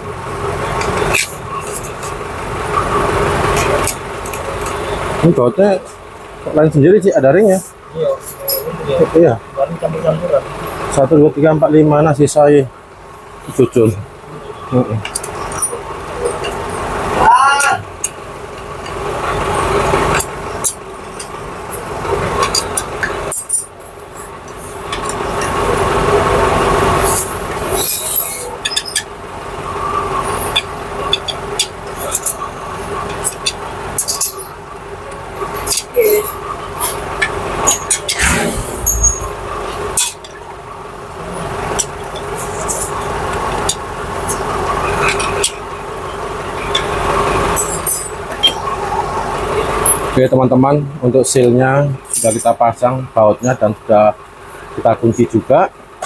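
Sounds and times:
steady hum: 0:38.0 - 0:41.4.

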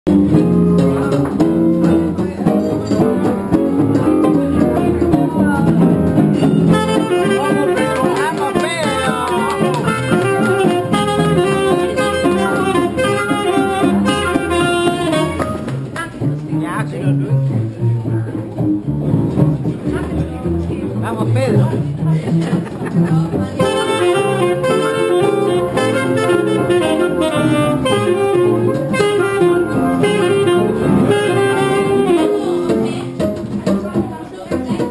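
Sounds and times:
horn lead line: 0:00.1 - 0:16.2, 0:23.6 - 0:33.4
traditional jazz band playing: 0:00.1 - 0:34.9.

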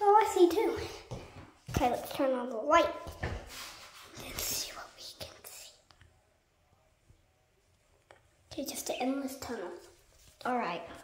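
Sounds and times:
person whispering: 0:04.1 - 0:06.0.

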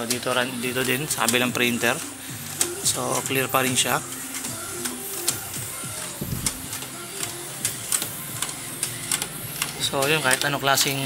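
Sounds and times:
printer clicking and ticking: 0:00.0 - 0:11.0.

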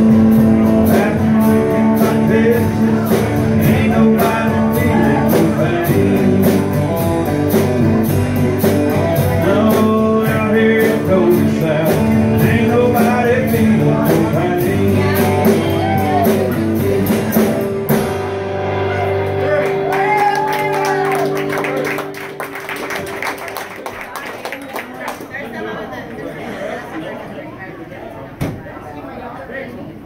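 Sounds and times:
live rock band playing: 0:00.0 - 0:24.0.

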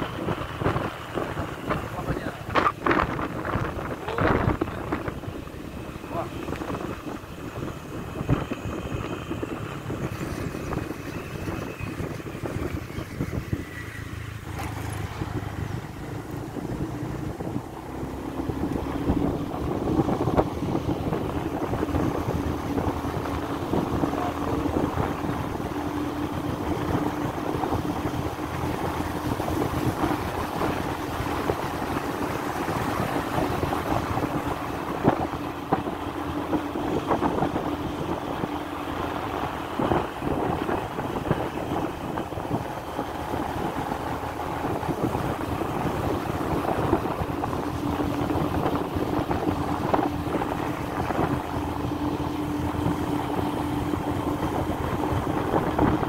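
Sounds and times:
motorcycle engine cruising: 0:00.0 - 0:56.0
wind rushing over microphone: 0:00.0 - 0:56.0.

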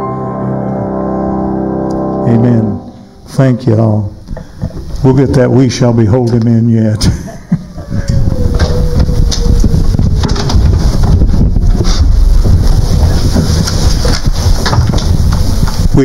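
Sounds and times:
microphone handling noise: 0:04.1 - 0:16.0.

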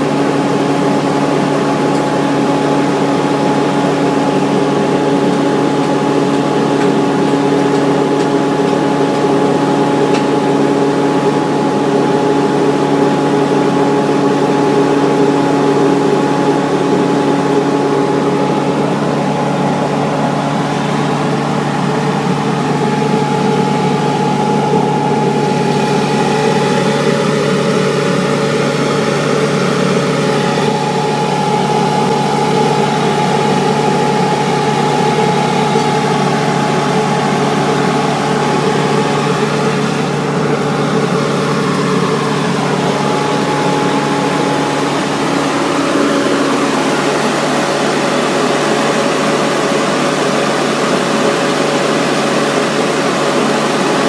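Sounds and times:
low hum: 0:00.0 - 0:50.4
machinery drone: 0:00.0 - 0:54.0
steady high whine: 0:00.0 - 0:54.0.

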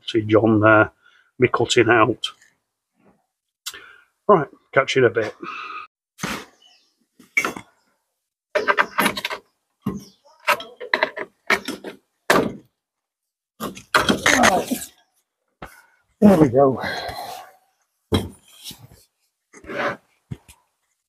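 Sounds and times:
tools knocking and clunking: 0:08.6 - 0:12.7, 0:13.6 - 0:14.6, 0:18.1 - 0:18.5.

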